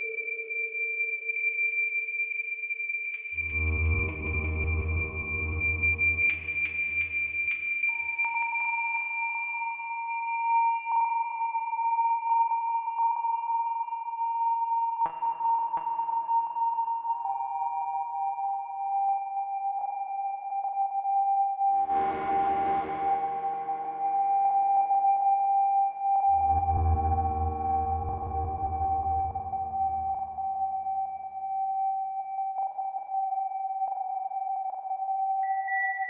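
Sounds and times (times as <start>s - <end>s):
bright full synthesizer note: 3.4s - 7.7s, 21.8s - 24.6s, 26.3s - 30.8s
steady high synthesizer tones: 3.4s - 7.7s, 21.9s - 24.4s.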